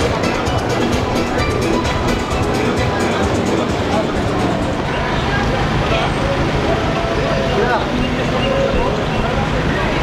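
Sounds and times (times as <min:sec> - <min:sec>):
steady low rumble: 0:00.0 - 0:08.0
indistinct voices of passers-by: 0:00.0 - 0:10.0.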